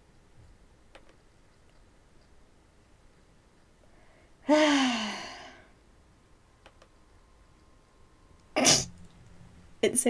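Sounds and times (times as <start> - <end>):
woman sneezing: 8.6 - 8.9.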